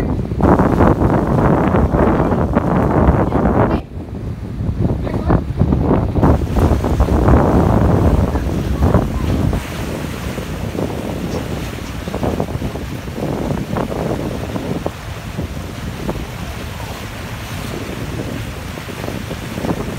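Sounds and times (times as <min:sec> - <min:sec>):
water splashing against boat: 0:00.0 - 0:19.9
wind buffeting microphone: 0:00.0 - 0:19.9.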